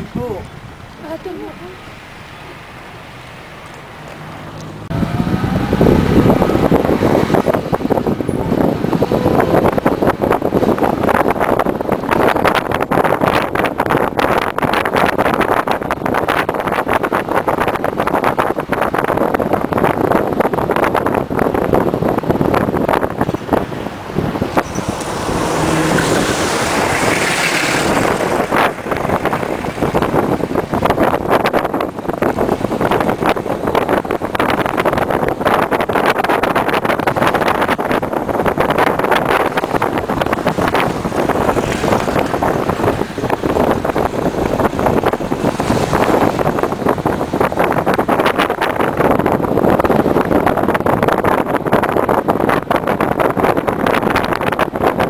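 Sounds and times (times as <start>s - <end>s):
road and engine noise in car: 0.0s - 55.0s.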